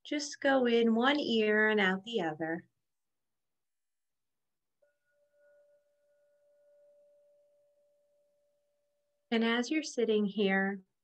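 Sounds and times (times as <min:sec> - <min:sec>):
faint chime ringing: 0:04.8 - 0:09.4.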